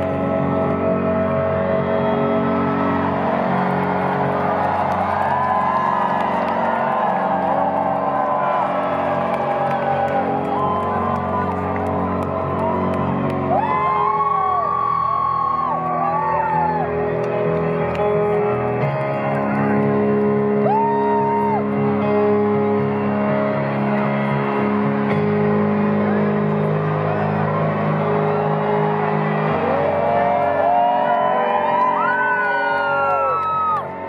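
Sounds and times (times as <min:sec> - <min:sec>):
high gliding cries from crowd: 0:00.0 - 0:18.9, 0:19.6 - 0:22.2, 0:25.4 - 0:34.0
crowd cheering: 0:00.0 - 0:34.0
ambient synth chords: 0:21.6 - 0:31.5.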